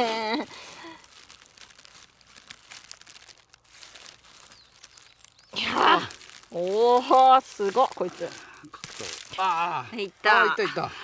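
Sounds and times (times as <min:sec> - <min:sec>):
hand digging in soil and pine needles: 0:00.0 - 0:10.8.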